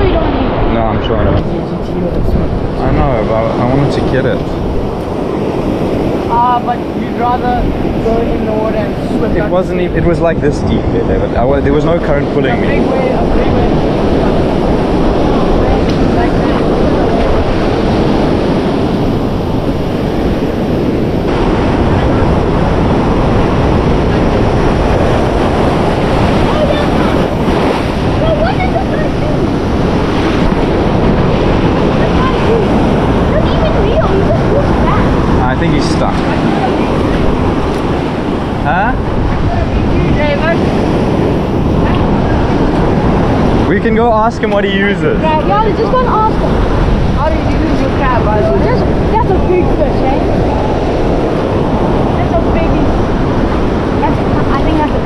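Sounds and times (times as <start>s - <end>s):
surf washing over rocks: 0.0s - 55.0s
wind noise on microphone: 0.0s - 55.0s.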